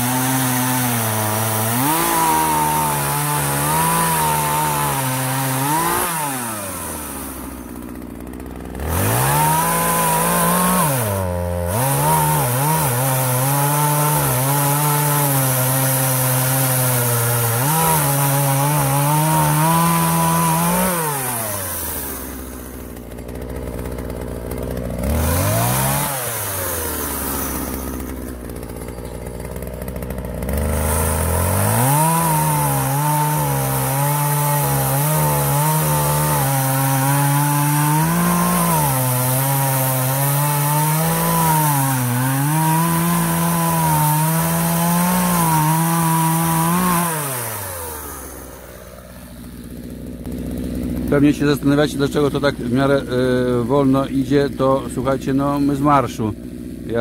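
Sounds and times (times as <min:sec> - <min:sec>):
chainsaw cutting a log: 0:00.0 - 0:57.0.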